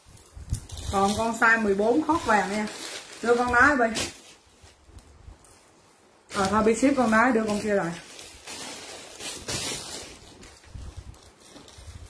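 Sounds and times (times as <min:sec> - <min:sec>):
clothing rustling: 0:00.0 - 0:12.0
woman speaking: 0:00.9 - 0:04.1, 0:06.3 - 0:08.1.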